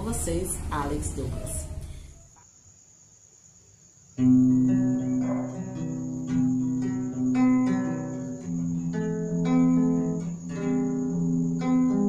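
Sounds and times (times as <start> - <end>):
plucked string chords: 4.2 - 12.0.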